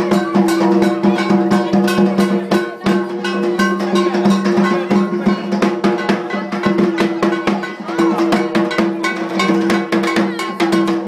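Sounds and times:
clanging metal percussion: 0.0 - 11.0
drums: 0.0 - 11.0.

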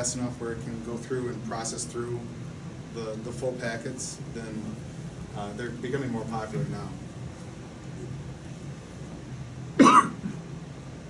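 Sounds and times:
person coughing: 9.8 - 10.4.

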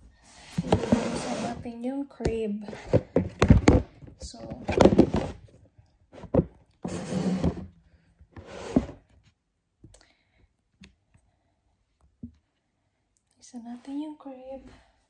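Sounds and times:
woman's voice: 1.1 - 3.0, 4.2 - 5.0, 13.4 - 14.9.

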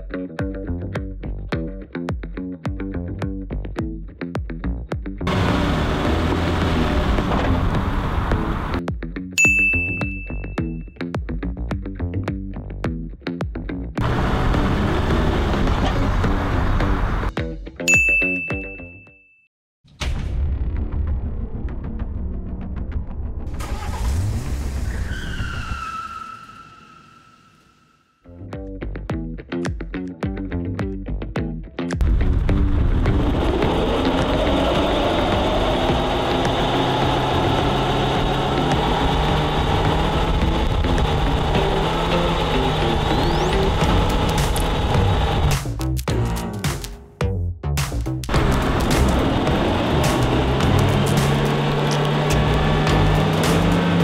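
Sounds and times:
car engine at raised revs: 5.3 - 8.8, 14.0 - 17.3, 32.2 - 45.6, 48.3 - 54.0
electronic ding: 9.4 - 10.9, 17.9 - 19.4
background music: 28.3 - 54.0.

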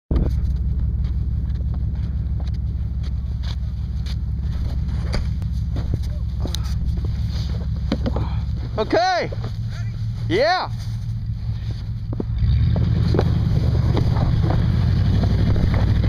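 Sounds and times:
wind buffeting microphone: 12.8 - 16.0.

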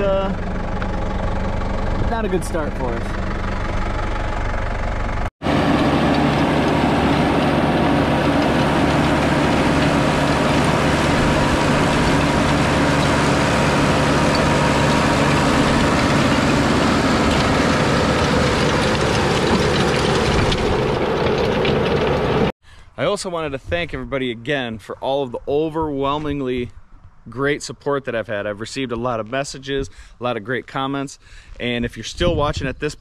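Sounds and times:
tractor diesel engine running: 0.0 - 22.5
rototiller churning soil: 5.4 - 22.5.

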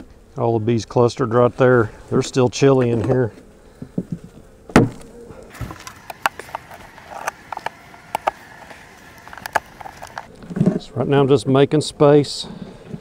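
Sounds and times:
bees buzzing: 0.0 - 10.5.

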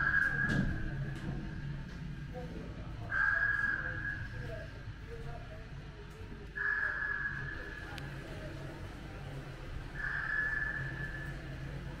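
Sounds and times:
constant low rumble: 0.0 - 12.0.

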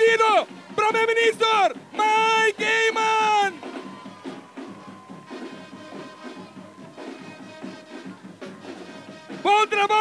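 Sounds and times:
music with steady beat: 0.3 - 10.0.

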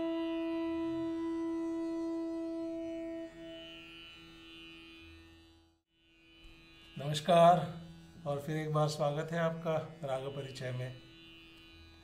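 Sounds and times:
bamboo flute holding a long note: 0.0 - 3.9.

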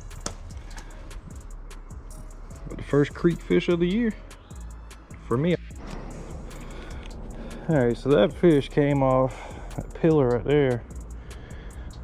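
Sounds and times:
low steady rumble: 4.7 - 12.0.

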